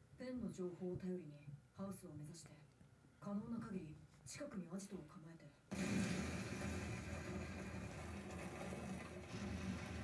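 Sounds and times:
explosion blast: 0:05.7 - 0:10.0.

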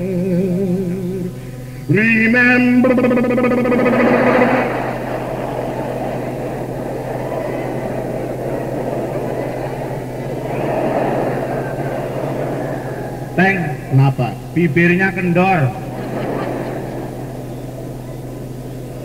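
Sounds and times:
cassette low hum: 0:00.0 - 0:19.0.

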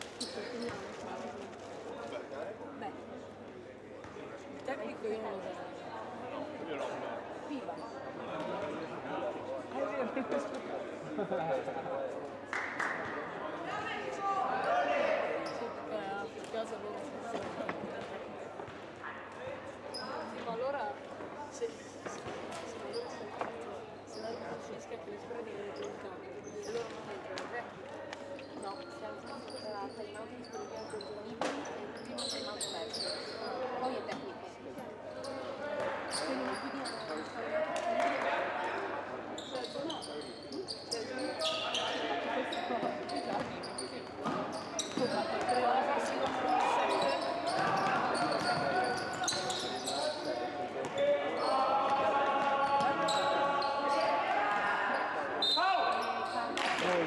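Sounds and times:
players shouting in echoing gym: 0:44.6 - 0:57.0.

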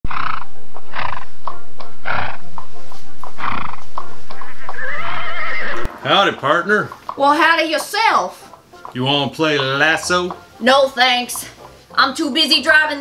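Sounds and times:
horse snorting bursts: 0:00.1 - 0:01.4, 0:02.0 - 0:02.5, 0:03.4 - 0:07.1
hooves clicking: 0:00.1 - 0:13.0
music: 0:00.1 - 0:13.0
horse whinny: 0:02.0 - 0:02.4, 0:03.4 - 0:06.4.

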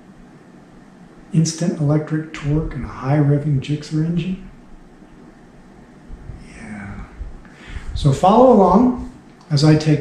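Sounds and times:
faint voiced hum: 0:00.0 - 0:10.0
low rumble: 0:06.0 - 0:08.3
soft low bumps: 0:06.0 - 0:09.2.

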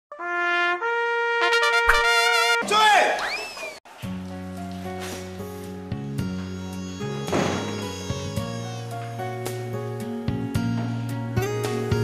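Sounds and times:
trumpet fanfare: 0:00.1 - 0:02.7
drum hit: 0:07.3 - 0:07.8.

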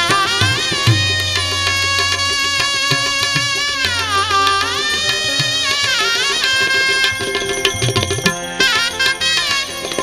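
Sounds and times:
dholak and tabla drumming: 0:00.0 - 0:10.0
shehnai melody: 0:00.0 - 0:10.0.

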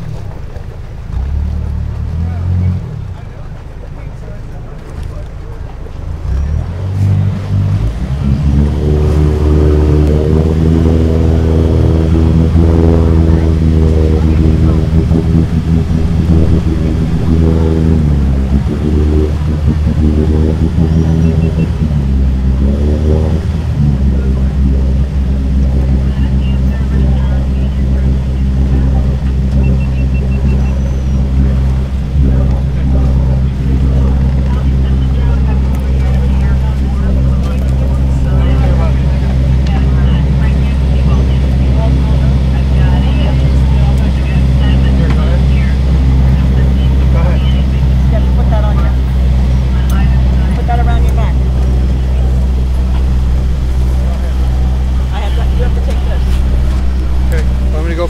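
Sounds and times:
boat engine running: 0:00.0 - 0:58.0.

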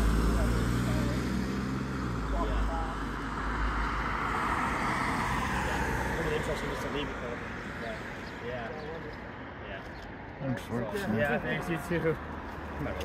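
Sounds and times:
van driving away: 0:00.0 - 0:06.9
street traffic noise: 0:00.0 - 0:13.0.

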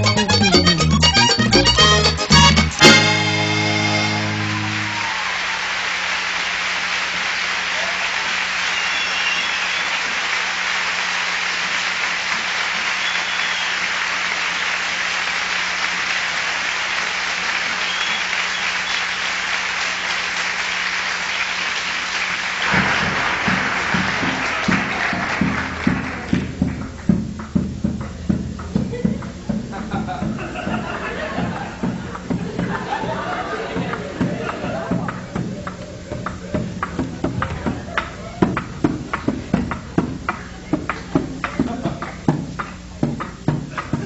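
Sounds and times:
music with steady beat: 0:00.0 - 0:05.0, 0:22.6 - 0:44.0
audience applauding: 0:02.6 - 0:27.6, 0:29.1 - 0:44.0.

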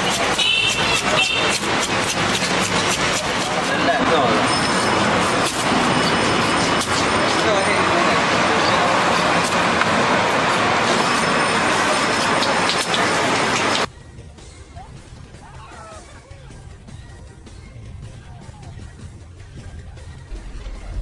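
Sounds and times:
steady traffic: 0:00.0 - 0:21.0.

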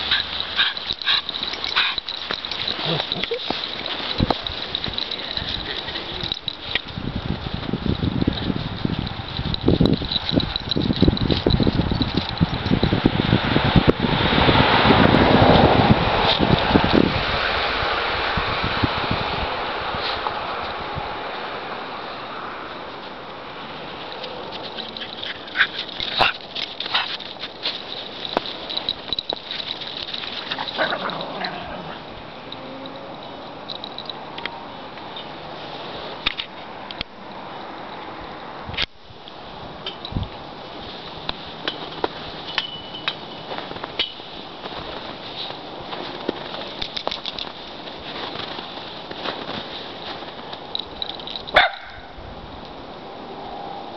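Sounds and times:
crunching in snow: 0:00.0 - 0:09.4, 0:23.8 - 0:32.1, 0:43.3 - 0:50.7
wind buffeting microphone: 0:00.0 - 0:21.3, 0:38.6 - 0:42.4.

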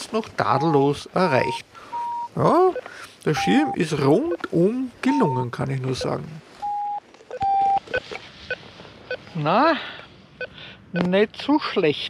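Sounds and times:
electronic beeps: 0:00.5 - 0:04.5, 0:05.1 - 0:05.4, 0:06.0 - 0:09.4.

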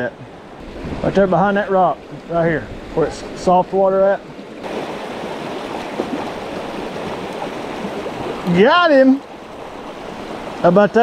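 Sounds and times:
river water rushing over rocks: 0:00.2 - 0:11.0.

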